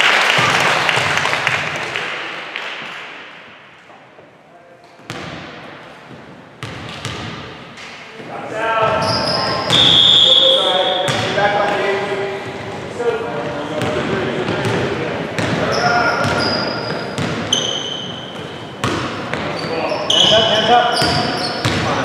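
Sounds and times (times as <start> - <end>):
players calling out: 8.2 - 18.8
high squeal: 9.0 - 11.1, 15.7 - 18.2, 19.6 - 21.8
basketball bouncing on hardwood floor: 11.1 - 11.3, 17.2 - 17.7, 18.4 - 19.5.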